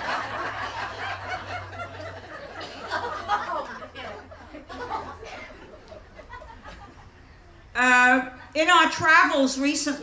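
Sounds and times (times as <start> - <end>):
audience laughing: 0.0 - 7.3.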